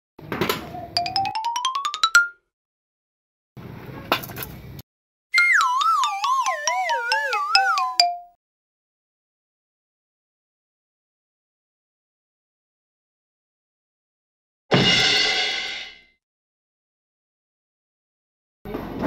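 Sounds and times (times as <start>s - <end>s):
wobbling falling whistle: 5.3s - 8.0s.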